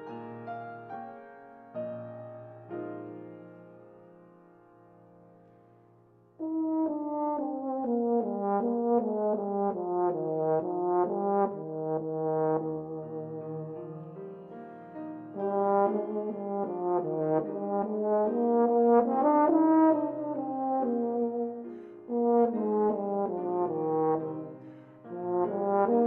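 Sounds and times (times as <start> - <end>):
piano accompaniment: 0.0 - 26.0
euphonium melody: 15.3 - 26.0.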